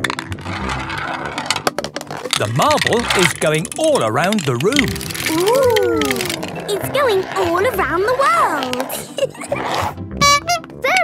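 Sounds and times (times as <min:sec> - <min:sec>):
marble rolling through marble run: 0:00.0 - 0:11.0.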